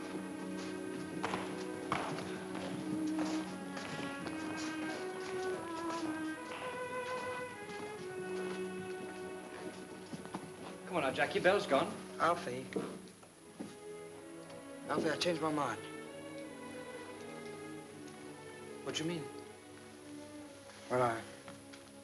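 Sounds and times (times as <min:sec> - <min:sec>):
boots walking on wooden floor: 0:00.0 - 0:18.4, 0:19.3 - 0:22.0
orchestral film score: 0:00.0 - 0:22.0.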